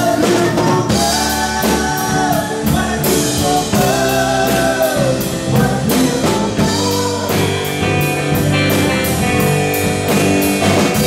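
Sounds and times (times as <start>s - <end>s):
drum kit beat: 0.0s - 11.0s
live rock band playing: 0.0s - 11.0s.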